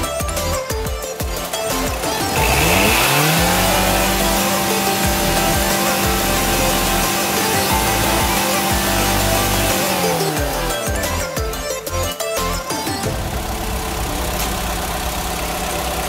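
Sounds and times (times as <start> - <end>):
background music: 0.0 - 16.0
car engine revving: 1.5 - 11.3, 13.1 - 16.0.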